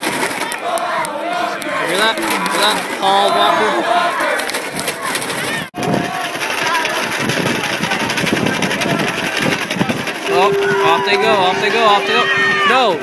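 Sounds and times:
crowd talking and shouting: 0.0 - 13.0.

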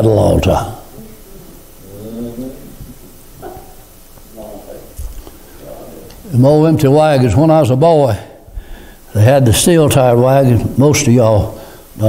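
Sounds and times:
faint murmured voice: 0.9 - 3.8.

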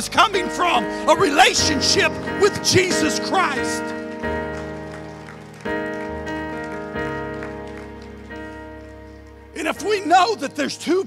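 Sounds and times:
keyboard playing soft chords: 0.0 - 11.0.

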